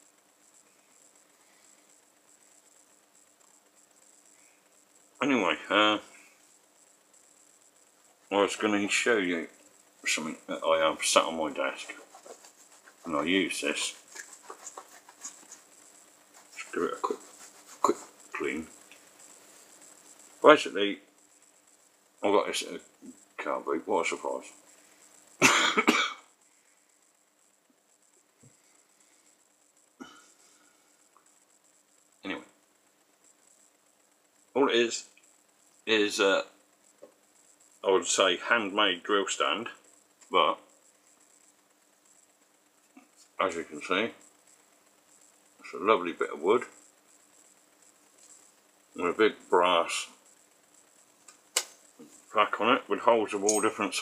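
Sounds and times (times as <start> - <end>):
sharp click: 51.3 - 51.8.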